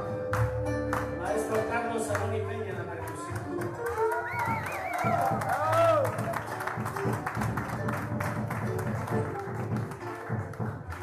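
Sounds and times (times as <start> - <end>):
hand drum percussion: 0.0 - 11.0
strummed acoustic guitars: 0.0 - 11.0
upright bass: 0.0 - 11.0.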